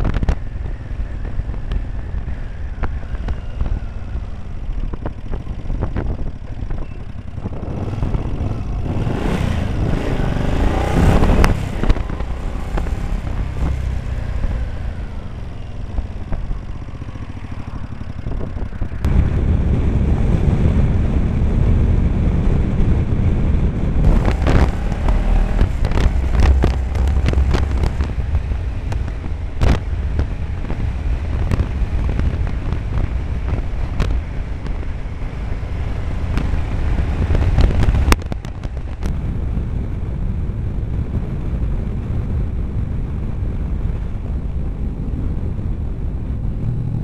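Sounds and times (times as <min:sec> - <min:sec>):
motorcycle engine running: 0:00.0 - 0:47.0
wind rumble on microphone: 0:00.0 - 0:47.0.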